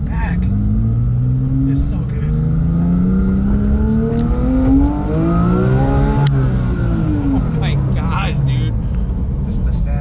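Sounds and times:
car engine accelerating: 0.0 - 10.0.

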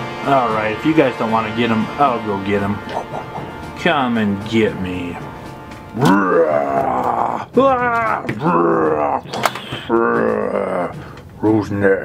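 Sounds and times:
background music: 0.0 - 12.0
person grunting and groaning: 2.8 - 3.6, 6.0 - 11.1.

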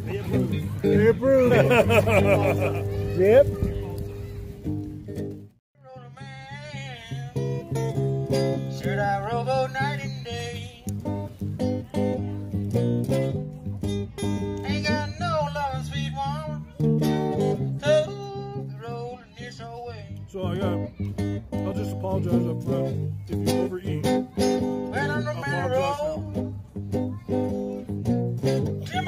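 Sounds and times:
acoustic guitar music: 0.0 - 29.0.

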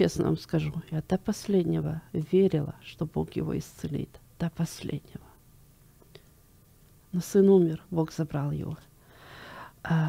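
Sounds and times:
faint breath: 9.0 - 9.8.

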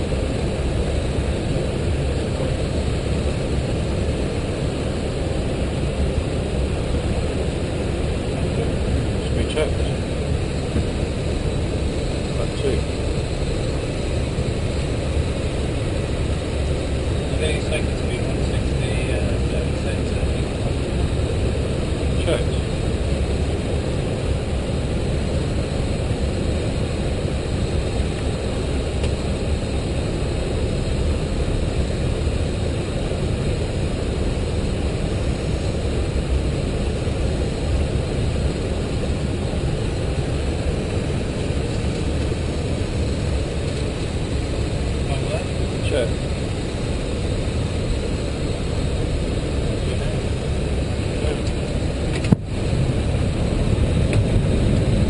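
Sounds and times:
aircraft cabin engine and airflow rumble: 0.0 - 55.0.

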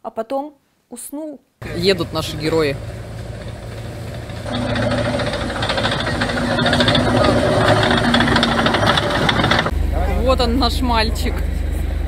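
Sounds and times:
off-road vehicle engine running: 1.6 - 12.0.

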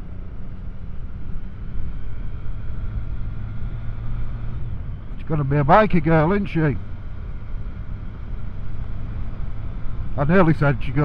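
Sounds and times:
motorcycle engine cruising: 0.0 - 11.0.

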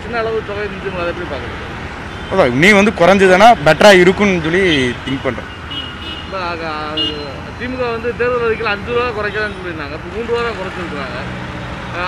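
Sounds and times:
road traffic noise: 0.0 - 12.0
man speaking: 2.3 - 5.5.

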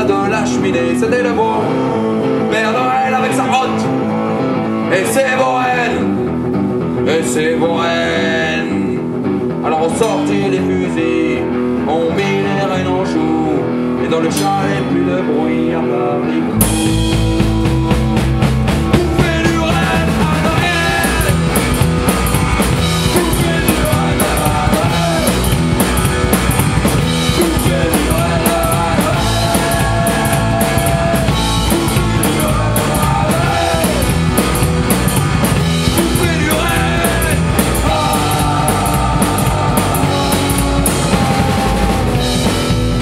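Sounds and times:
electric guitar: 0.0 - 43.0
upright bass: 0.0 - 43.0
drum kit: 16.5 - 43.0.

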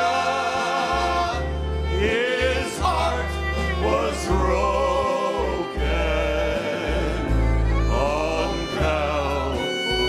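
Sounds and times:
fiddle: 0.0 - 10.0
low bass notes: 0.0 - 10.0
male trio singing in harmony: 0.0 - 10.0.

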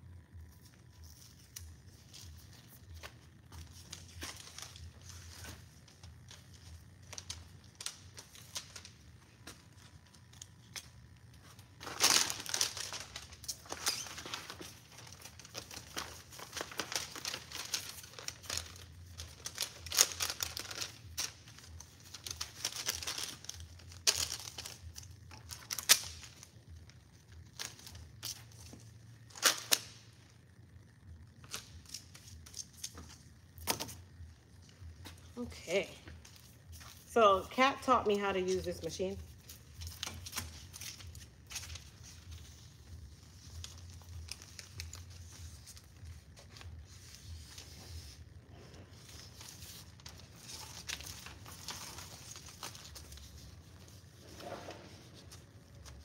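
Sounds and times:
paper labels crinkling and rustling: 0.0 - 56.0
sharp paper crackles: 0.5 - 30.6, 37.8 - 56.0.

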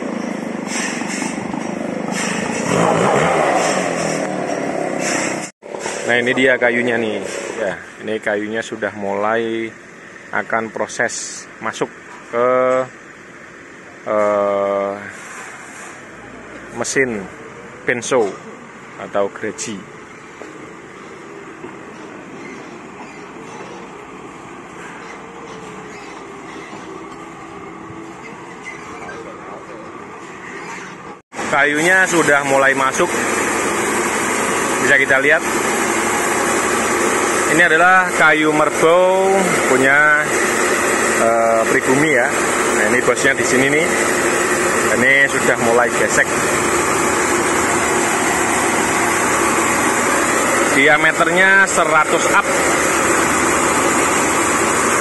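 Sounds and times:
band saw cutting log: 0.0 - 7.9, 30.2 - 55.0
forklift engine running: 0.0 - 8.0, 15.2 - 55.0.

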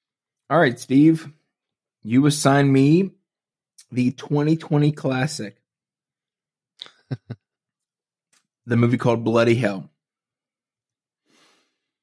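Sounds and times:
faint breath: 11.2 - 12.0.

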